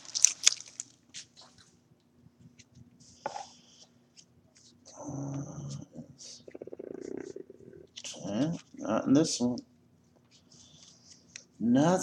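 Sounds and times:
card pack wrapper crinkling: 0.0 - 1.4
faint steady hum: 0.0 - 12.0.

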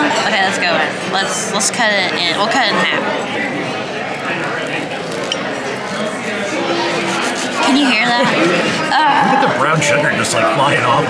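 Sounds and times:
restaurant chatter: 0.0 - 11.0
knife sawing through crunchy crust: 5.8 - 8.9.

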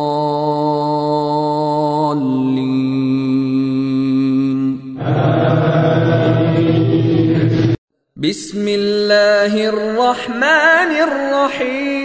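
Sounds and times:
fuller louder chanting voice: 0.0 - 12.0
person chanting recitation: 0.0 - 12.0.

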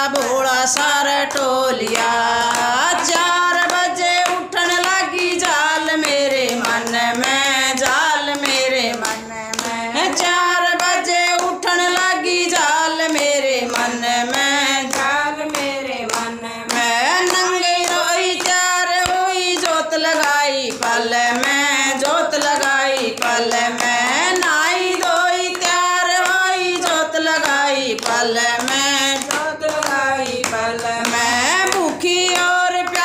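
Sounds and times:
hand claps: 0.0 - 33.0
women singing together: 0.0 - 33.0.

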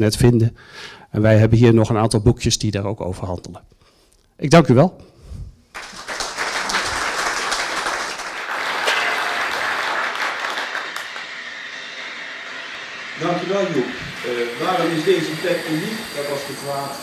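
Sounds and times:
audience applauding: 5.7 - 13.2.

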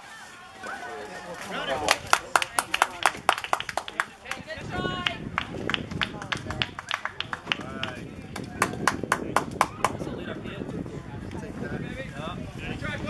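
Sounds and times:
spectators clapping: 1.5 - 10.0.

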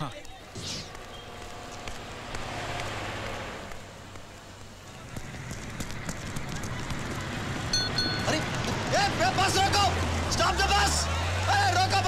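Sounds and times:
bus engine hum: 0.0 - 12.0
crowd chatter: 4.8 - 12.0.

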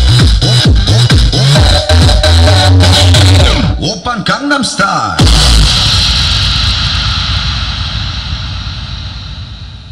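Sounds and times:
electronic dance music: 0.0 - 7.9
heavy bass hit: 5.2 - 9.9.

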